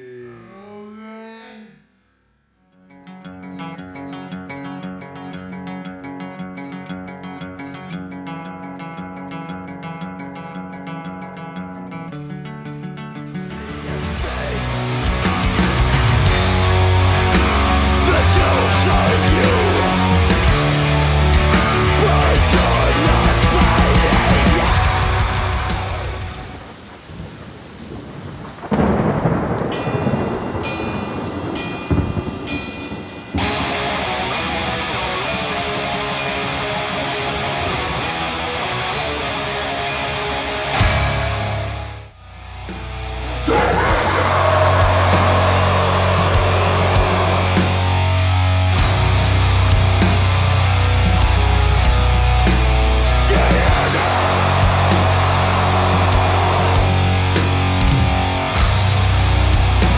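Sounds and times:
distorted guitars sustained chord: 0:13.4 - 0:26.6, 0:31.9 - 0:59.9
thunder rumbling: 0:22.7 - 0:36.2, 0:43.3 - 0:50.3
rain on wet asphalt: 0:25.0 - 0:37.1.

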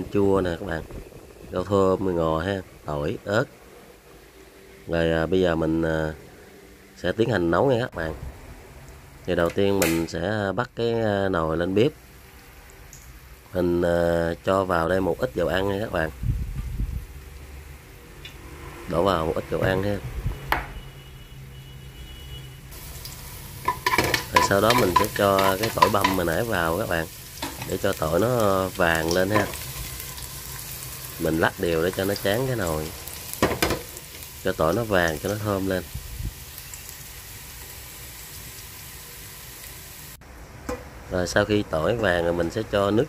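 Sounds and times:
garlic sizzling in hot oil: 0:11.9 - 0:18.0, 0:22.7 - 0:40.9
electric cooktop low hum: 0:22.8 - 0:43.0.

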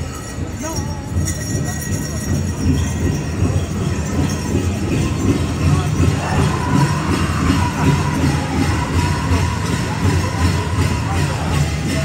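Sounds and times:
drum group drumming and singing: 0:02.6 - 0:12.0.

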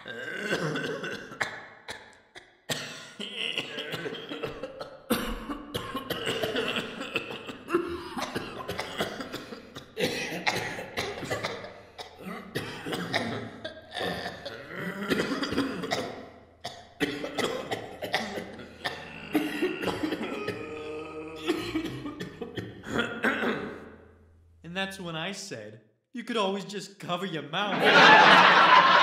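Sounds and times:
person coughing and throat-clearing: 0:00.0 - 0:24.0.

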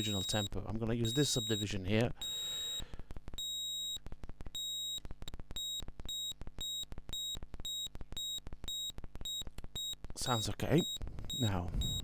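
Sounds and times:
rhythmic synth beeping: 0:05.6 - 0:12.0.

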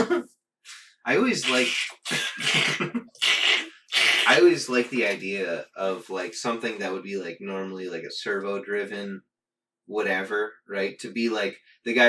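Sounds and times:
breathy laughter: 0:02.1 - 0:03.6.

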